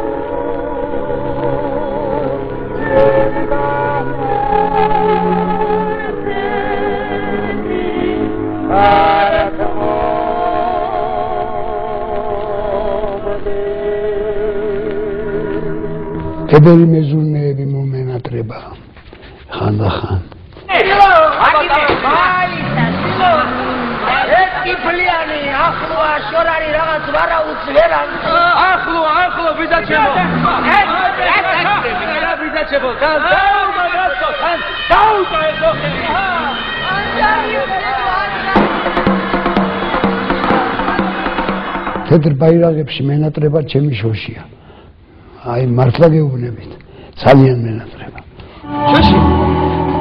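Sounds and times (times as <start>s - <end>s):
singing with vibrato: 0.0s - 16.6s, 22.4s - 42.0s, 48.6s - 50.0s
people talking: 16.5s - 18.8s, 19.5s - 38.6s.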